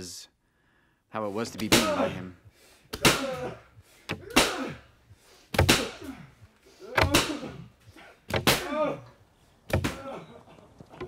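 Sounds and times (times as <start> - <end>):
whip lashes: 2.9 - 3.5, 4.3 - 4.8, 5.5 - 6.2, 7.0 - 7.6, 8.3 - 8.8
person crying in pain: 3.0 - 4.9, 5.8 - 7.8, 8.5 - 9.2.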